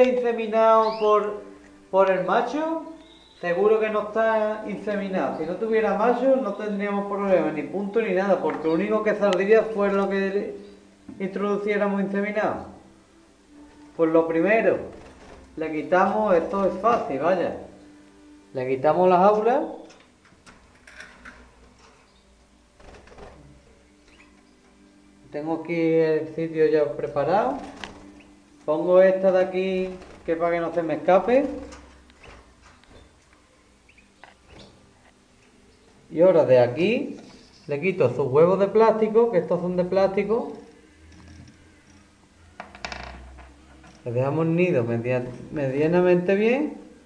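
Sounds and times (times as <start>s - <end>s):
wire birdcage clicks and rattles: 19.8s - 21.5s.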